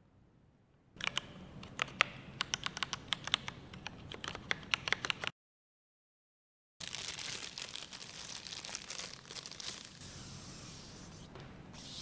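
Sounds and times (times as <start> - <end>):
mechanical keyboard typing: 1.0 - 5.3.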